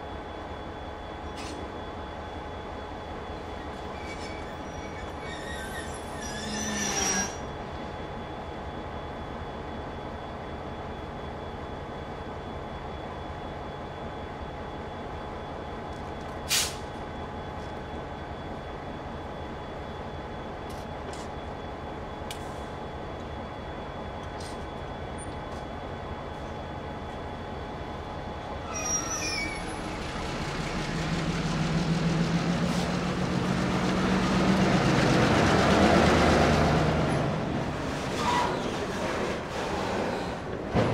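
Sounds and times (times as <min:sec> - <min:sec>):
diesel locomotive engine rumble: 0:00.0 - 0:40.9
high wheel squeal: 0:03.5 - 0:07.6, 0:28.5 - 0:30.4, 0:38.0 - 0:40.4
freight cars rolling: 0:28.6 - 0:40.9.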